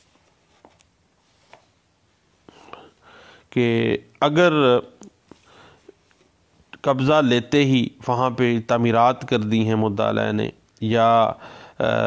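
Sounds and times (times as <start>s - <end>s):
man speaking: 3.5s - 5.1s, 6.8s - 12.0s.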